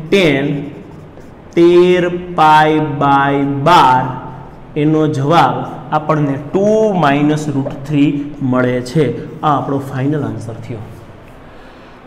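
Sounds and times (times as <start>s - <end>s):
man's voice holding long syllables: 0.0s - 0.9s, 1.5s - 11.0s.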